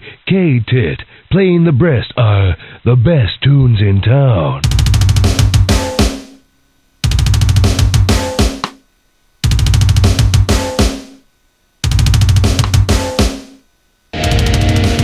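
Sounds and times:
fast bass drum and snare hits: 0:04.6 - 0:06.4, 0:07.0 - 0:08.8, 0:09.4 - 0:11.2, 0:11.8 - 0:13.6, 0:14.2 - 0:15.0.

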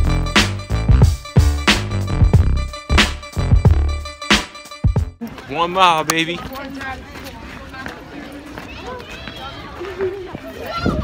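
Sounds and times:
footsteps on pavement: 0:05.2 - 0:11.0.

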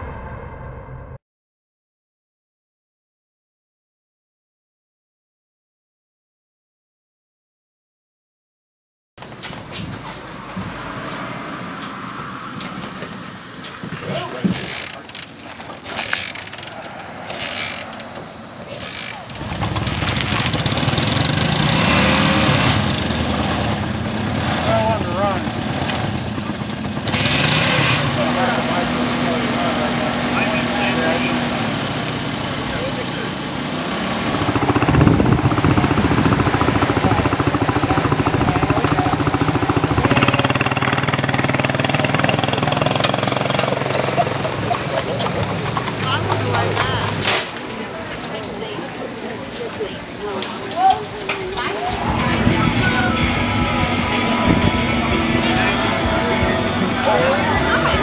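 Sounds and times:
motorcycle engines idling: 0:09.2 - 0:48.3, 0:51.2 - 0:58.0
people talking: 0:13.9 - 0:16.8, 0:23.3 - 0:31.8, 0:32.4 - 0:33.5, 0:34.6 - 0:58.0.

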